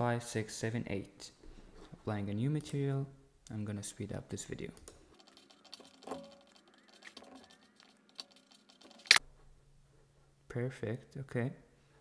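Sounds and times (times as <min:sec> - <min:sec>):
mouse and keyboard clicking: 0:04.8 - 0:09.2.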